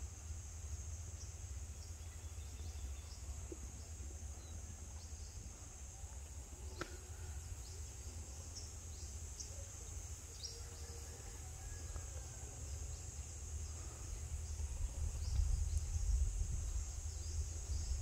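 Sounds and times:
insect chirps: 0:00.0 - 0:18.0
insects droning: 0:00.0 - 0:18.0
low microphone rumble: 0:12.6 - 0:18.0.

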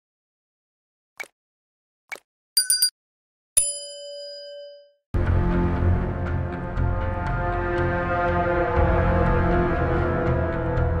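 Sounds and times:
bell-like ding: 0:03.6 - 0:05.0.

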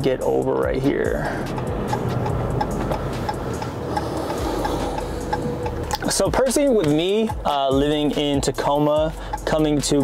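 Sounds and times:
in-cabin road and engine noise: 0:00.0 - 0:09.5
turn signal ticking: 0:00.7 - 0:10.0.

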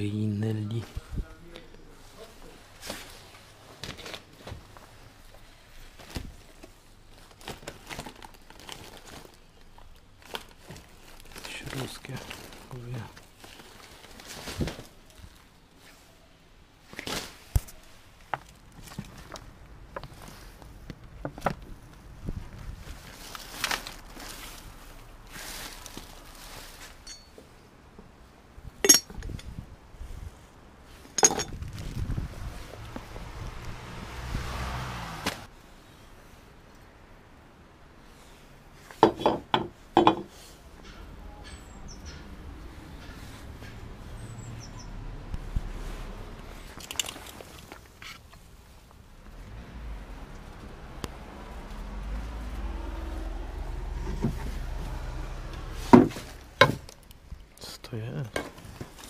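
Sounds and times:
paper and plastic rustling: 0:02.1 - 0:16.0, 0:16.8 - 0:20.8, 0:21.4 - 0:27.0, 0:45.6 - 0:48.6, 0:58.4 - 0:59.0
objects knocking and clinking: 0:27.0 - 0:27.4, 0:28.8 - 0:29.4, 0:31.1 - 0:31.6.

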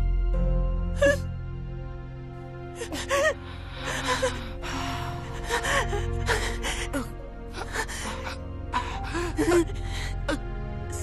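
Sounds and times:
low sustained film music: 0:00.0 - 0:11.0
woman gasping and whimpering: 0:02.8 - 0:10.5.

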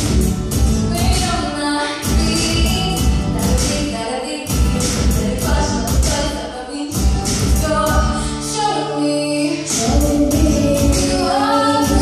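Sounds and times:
backing track with beat: 0:00.0 - 0:08.6, 0:09.6 - 0:12.0
woman and girl singing: 0:07.6 - 0:12.0.

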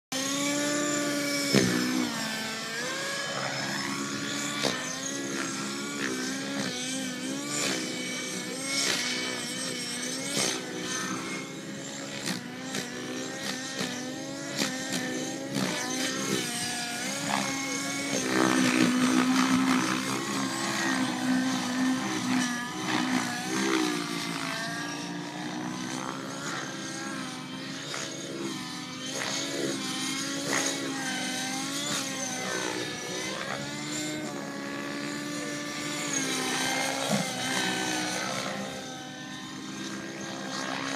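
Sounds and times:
model airplane engine: 0:00.1 - 0:40.9.

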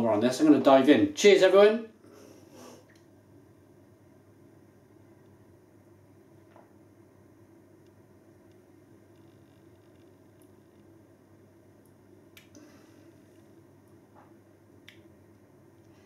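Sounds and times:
low room hum: 0:00.0 - 0:16.0
lip smacks and mouth clicks: 0:14.8 - 0:15.1.

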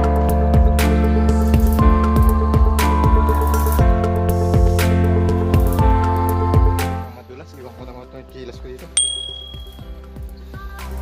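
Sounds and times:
gentle instrumental music: 0:00.0 - 0:11.0
short bright ding: 0:09.0 - 0:09.8.

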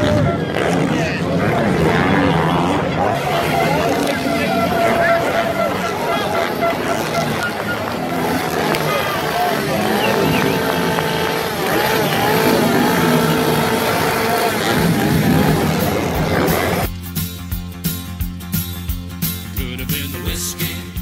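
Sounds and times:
crowd talking: 0:00.0 - 0:17.0
motocross bikes revving: 0:00.0 - 0:17.0.

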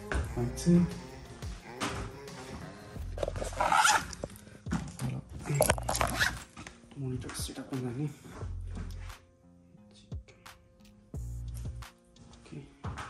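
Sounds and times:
indistinct voices: 0:00.0 - 0:03.7
music in a small room: 0:00.0 - 0:13.0
close rustling and handling: 0:03.1 - 0:07.4.

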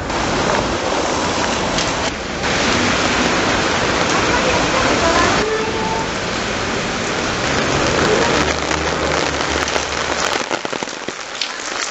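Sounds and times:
rain falling on wet street: 0:00.0 - 0:11.9.

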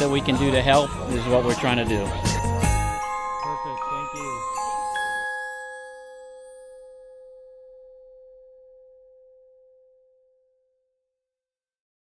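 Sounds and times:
bell-like chime note: 0:00.0 - 0:10.5.

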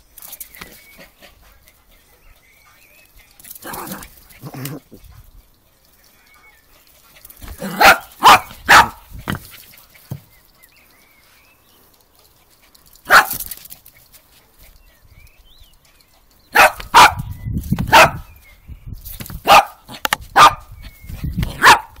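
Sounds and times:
small dog barking: 0:07.5 - 0:09.0, 0:13.0 - 0:13.4, 0:16.5 - 0:17.3, 0:17.9 - 0:18.3, 0:19.4 - 0:20.7, 0:21.5 - 0:22.0.

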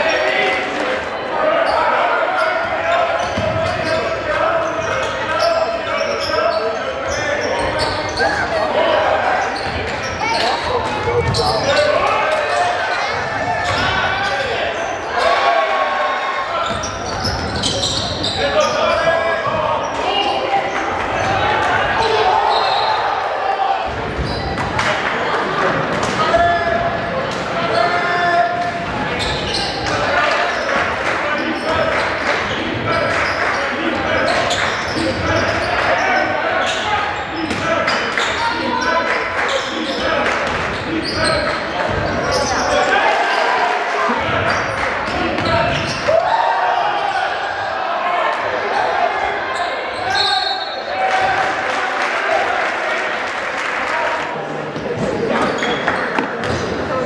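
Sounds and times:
players shouting: 0:00.0 - 0:57.0
spectators chattering: 0:00.0 - 0:57.0
basketball bouncing on court: 0:03.2 - 0:03.9.

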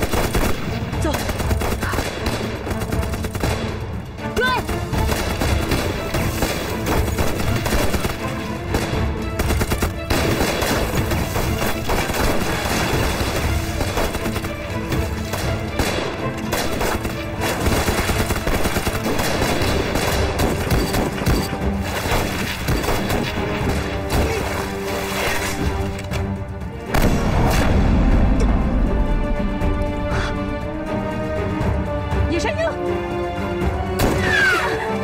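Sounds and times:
rapid rifle gunfire: 0:00.0 - 0:03.8, 0:04.8 - 0:23.7.

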